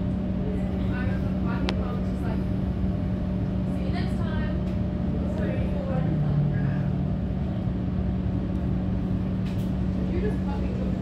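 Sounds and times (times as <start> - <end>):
train carriage hum and rumble: 0.0 - 11.0.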